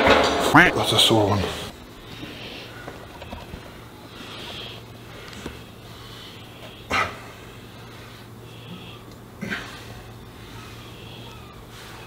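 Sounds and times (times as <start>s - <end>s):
steady low hum: 0.0s - 12.0s
man breathing heavily: 1.7s - 12.0s.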